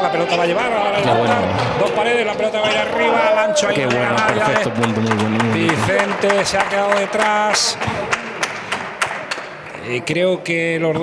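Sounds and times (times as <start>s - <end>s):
spectators clapping: 3.4s - 9.7s.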